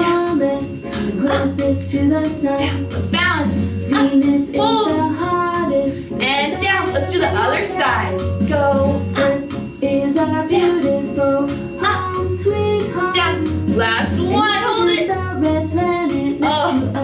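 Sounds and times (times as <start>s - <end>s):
instrumental backing with bass line: 0.0s - 17.0s
woman singing: 0.0s - 17.0s.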